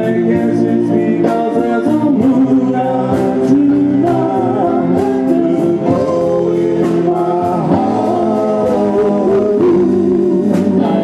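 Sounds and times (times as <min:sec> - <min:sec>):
backing vocal harmonies: 0:00.0 - 0:11.0
drum and cymbal hits: 0:00.0 - 0:11.0
instrumental accompaniment: 0:00.0 - 0:11.0
man singing lead vocals: 0:00.0 - 0:11.0.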